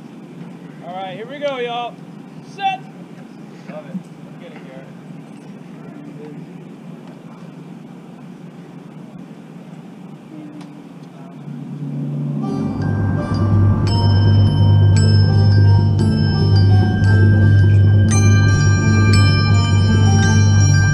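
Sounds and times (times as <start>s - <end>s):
stadium ambience: 0.0s - 20.9s
deep bass: 11.5s - 20.9s
rolled mallet percussion chords: 12.3s - 20.9s.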